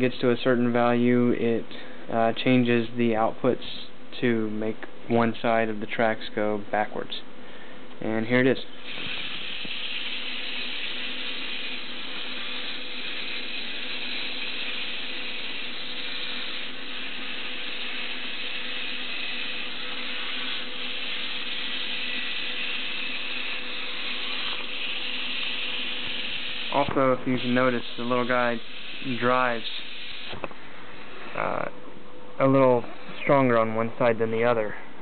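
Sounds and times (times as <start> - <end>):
small gear motors whirring: 8.9 - 30.4.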